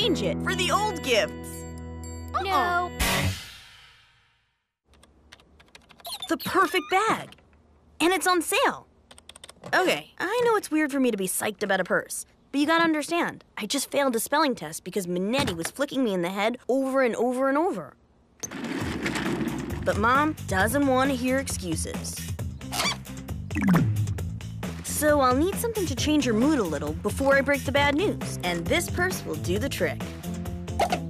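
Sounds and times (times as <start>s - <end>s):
typing on computer keyboard: 4.9s - 6.2s, 9.1s - 9.7s.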